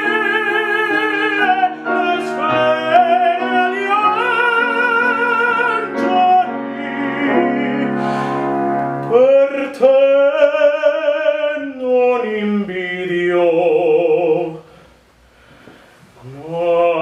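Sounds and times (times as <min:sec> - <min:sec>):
piano accompaniment: 0:00.0 - 0:14.6
man singing operatically: 0:00.0 - 0:14.7, 0:16.2 - 0:17.0.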